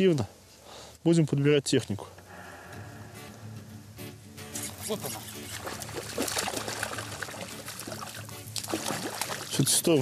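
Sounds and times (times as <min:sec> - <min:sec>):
fish thrashing and splashing: 0:05.0 - 0:09.6.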